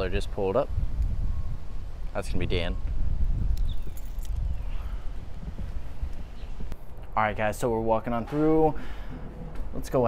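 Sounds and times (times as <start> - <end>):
footsteps on asphalt: 5.1 - 7.2.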